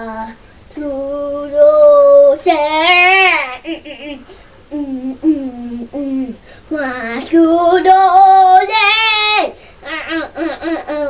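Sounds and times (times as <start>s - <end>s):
boy singing wordless syllables: 0.0s - 11.0s.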